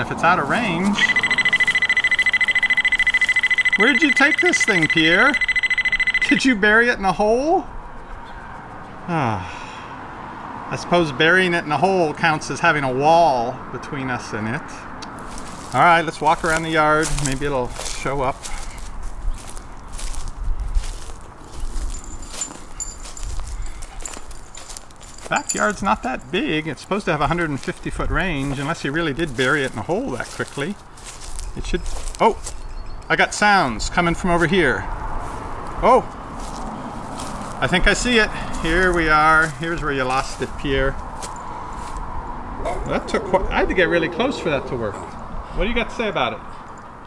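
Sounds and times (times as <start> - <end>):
footsteps on grass: 0.0 - 6.4, 15.1 - 32.7, 33.8 - 42.2
faint high-pitched tone: 1.0 - 6.5
fast-pulsing high-pitched alarm beep: 1.0 - 6.6.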